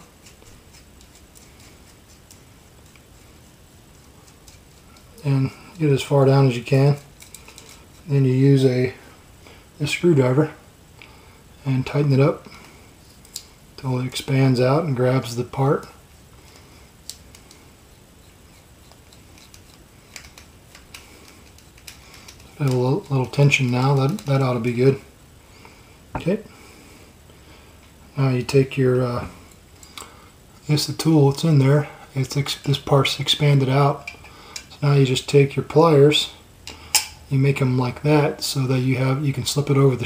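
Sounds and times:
faint low hum: 0:00.0 - 0:40.0
steady low hiss: 0:00.0 - 0:40.0.

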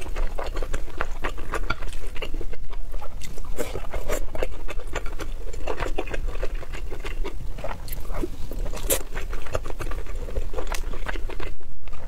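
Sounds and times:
wet chewing and mouth sounds: 0:00.0 - 0:12.0.

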